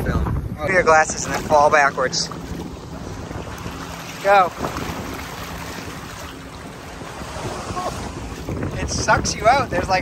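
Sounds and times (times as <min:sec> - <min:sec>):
water splashing and sloshing: 0:00.1 - 0:10.0.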